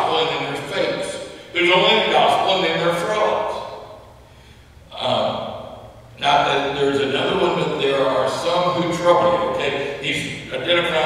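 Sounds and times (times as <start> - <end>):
man speaking: 0.0 - 3.8, 4.9 - 11.0.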